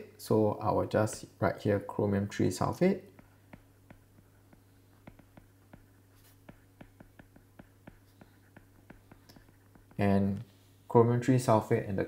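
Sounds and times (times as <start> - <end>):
low steady hum: 0.0 - 12.0
stylus tapping on glass screen: 3.1 - 10.0.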